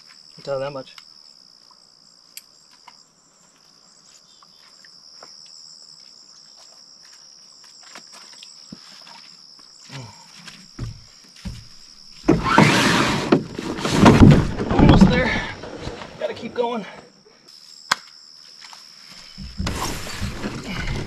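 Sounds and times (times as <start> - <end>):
insects trilling: 0.0 - 21.0
soft thumps: 10.8 - 12.5, 19.3 - 21.0.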